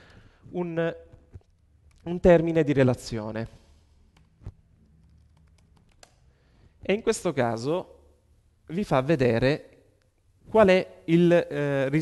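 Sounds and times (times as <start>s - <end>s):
keyboard typing: 4.9s - 6.2s.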